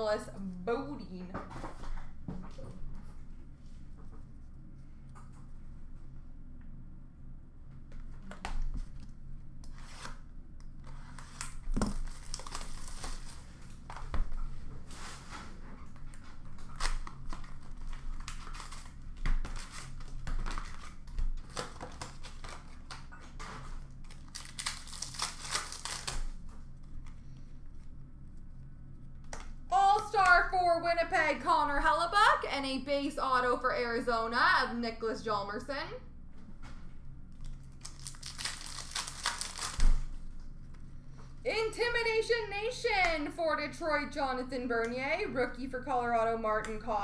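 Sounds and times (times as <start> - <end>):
wrappers crinkling and ripping: 10.8 - 14.1, 14.9 - 28.0, 37.3 - 40.8.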